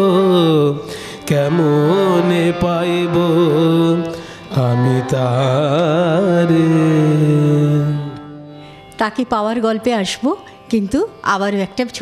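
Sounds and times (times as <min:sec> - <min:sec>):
man singing devotional song: 0:00.0 - 0:08.5
instrumental accompaniment: 0:00.0 - 0:12.0.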